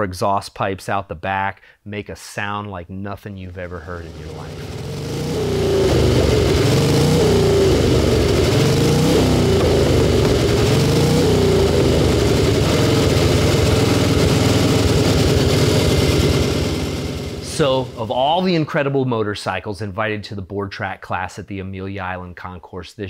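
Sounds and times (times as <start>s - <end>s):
motorcycle engine revving: 3.8s - 18.5s.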